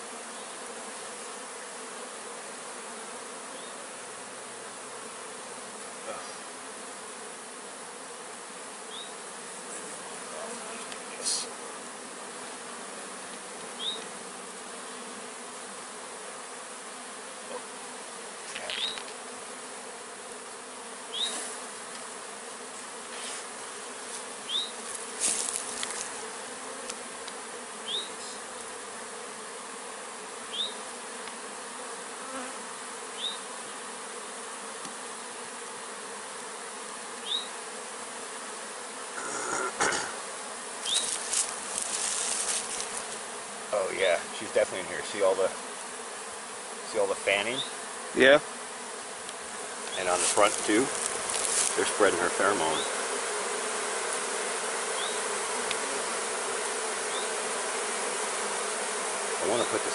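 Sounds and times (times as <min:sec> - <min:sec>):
bee swarm buzzing: 0:00.0 - 0:59.9.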